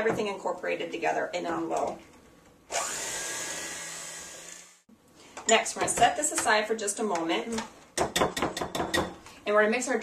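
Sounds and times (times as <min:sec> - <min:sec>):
electric hand mixer running: 0:02.7 - 0:04.8.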